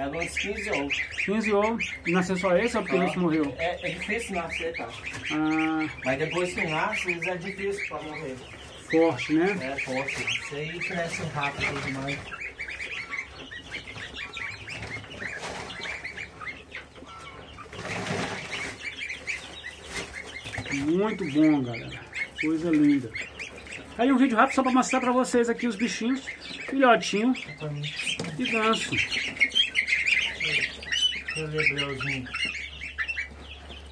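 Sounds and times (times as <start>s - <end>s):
goslings and chicks peeping: 0.0s - 33.9s
rustling: 0.0s - 33.9s.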